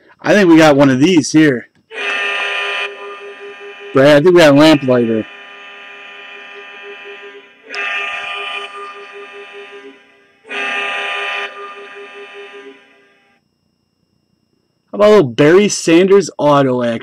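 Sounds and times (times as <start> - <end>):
goal horn blasts: 1.9 - 12.7
steady pulsing tone: 1.9 - 16.0.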